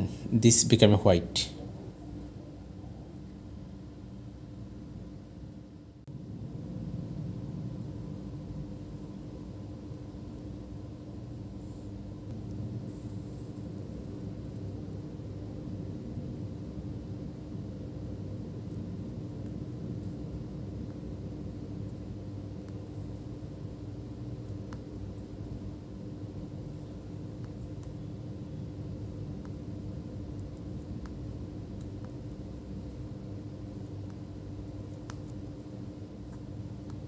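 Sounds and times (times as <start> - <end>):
constant hum: 0.0 - 37.0
low background rumble: 0.0 - 37.0.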